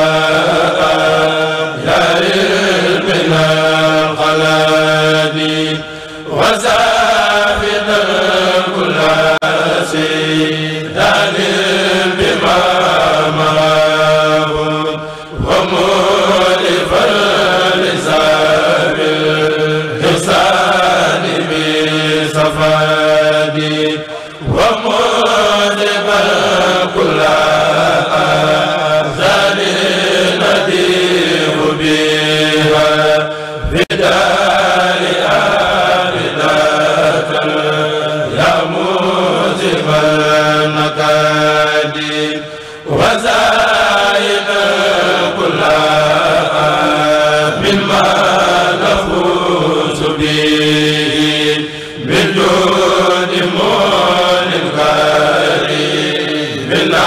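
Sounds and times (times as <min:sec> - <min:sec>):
men chanting into microphones: 0:00.0 - 0:57.0.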